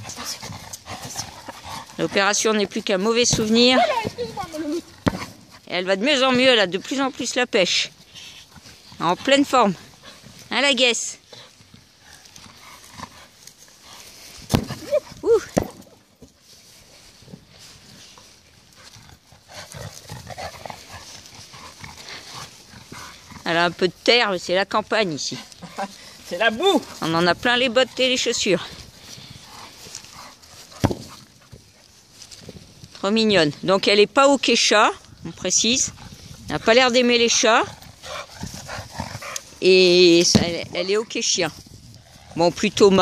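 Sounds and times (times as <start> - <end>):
dog nosing ball on grass: 0.0 - 9.6
football kicked on grass: 3.1 - 4.3, 4.9 - 5.5, 14.4 - 16.3, 30.7 - 31.7, 40.1 - 40.8.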